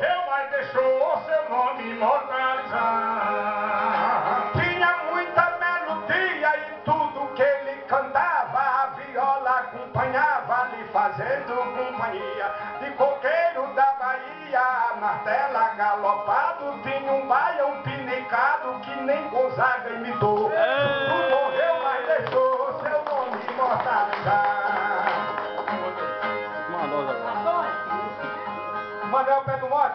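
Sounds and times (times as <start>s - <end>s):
man singing gliding melody: 0.0s - 25.0s
violas plucked and strummed: 24.1s - 29.8s.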